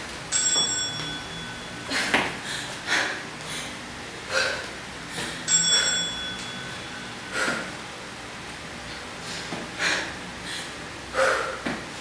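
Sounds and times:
bright bell ding: 0:00.3 - 0:02.0, 0:05.4 - 0:07.3.

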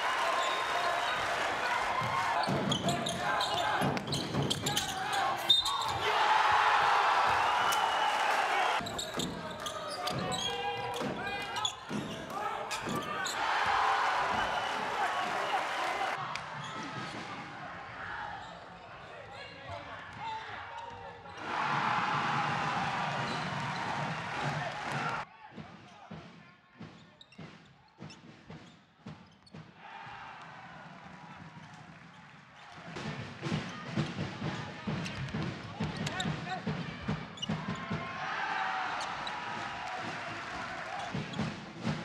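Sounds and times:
crowd cheering: 0:00.0 - 0:18.8, 0:19.8 - 0:25.3, 0:29.8 - 0:42.0
basketball bouncing on wood court: 0:02.0 - 0:05.0.

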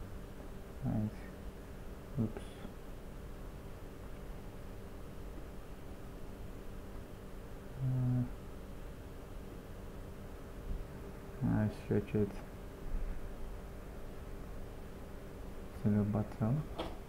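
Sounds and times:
steady low hum: 0:00.0 - 0:17.0
person humming mm: 0:07.8 - 0:08.4.

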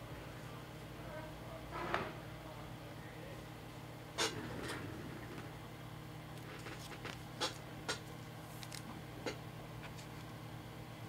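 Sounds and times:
steady low hum: 0:00.0 - 0:11.0
cards and plastic sleeves handled: 0:06.5 - 0:08.9.

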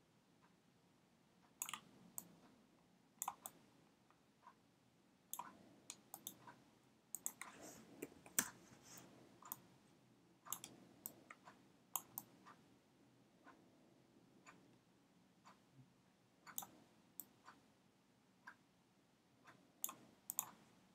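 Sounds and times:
low room noise: 0:00.0 - 0:20.9
computer mouse clicks: 0:01.6 - 0:02.4, 0:03.2 - 0:03.6, 0:05.3 - 0:09.7, 0:10.4 - 0:12.6, 0:16.5 - 0:17.6, 0:19.8 - 0:20.6.

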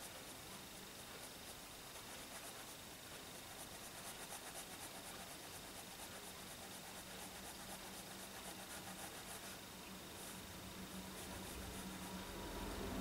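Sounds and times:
pen nib scratching on paper: 0:00.0 - 0:09.6, 0:10.2 - 0:12.3.

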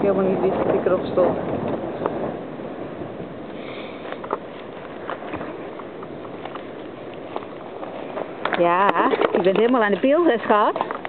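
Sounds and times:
rustling of dry leaves: 0:00.0 - 0:11.0
twigs cracking: 0:03.9 - 0:11.0.

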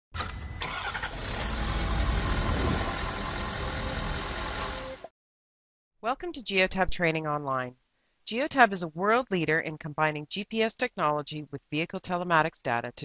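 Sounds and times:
engine start click: 0:00.2 - 0:05.0
engine running: 0:00.2 - 0:05.1.

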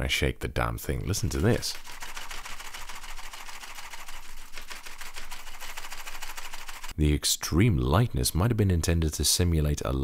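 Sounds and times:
keyboard keycaps rattling: 0:01.5 - 0:06.9.

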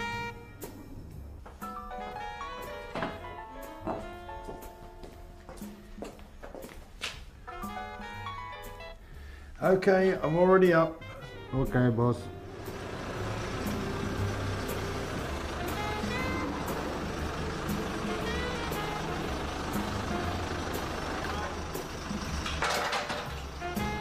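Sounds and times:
diesel engine running: 0:12.2 - 0:24.0.

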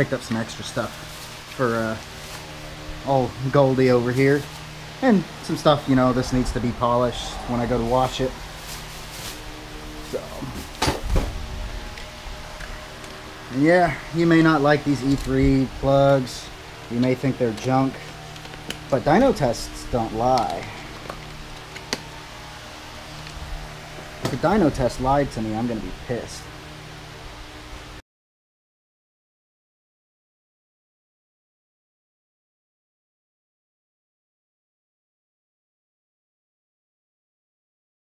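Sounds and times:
plastic bag rustling: 0:07.2 - 0:12.0.

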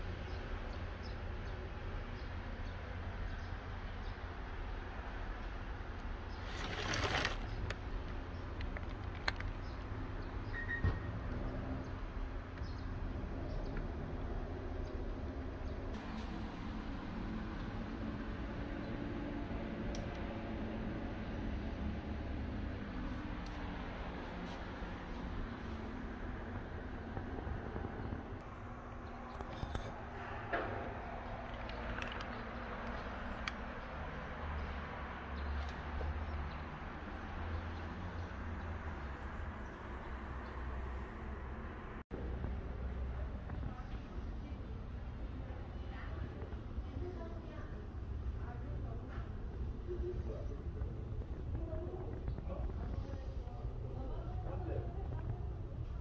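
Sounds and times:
plastic sheeting rustle: 0:06.4 - 0:07.6
low rumble on microphone: 0:20.5 - 0:33.9, 0:42.2 - 0:56.0.

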